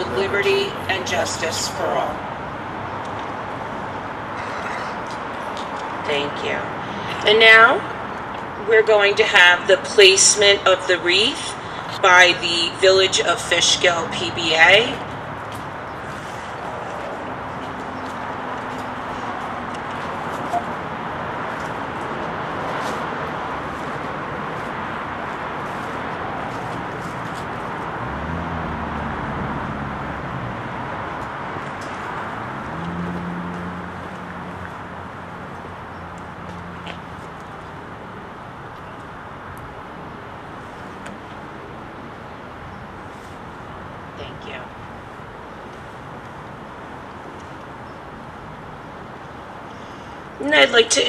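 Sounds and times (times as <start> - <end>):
passing vehicle engine hum: 0.0 - 7.3, 13.8 - 45.2
street traffic noise: 0.0 - 51.0.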